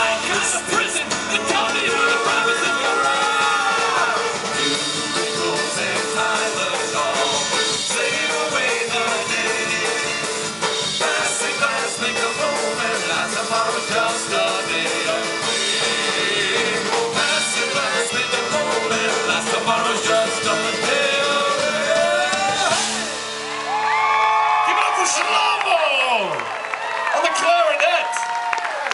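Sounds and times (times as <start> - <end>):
live rock band playing: 0.0 - 24.2.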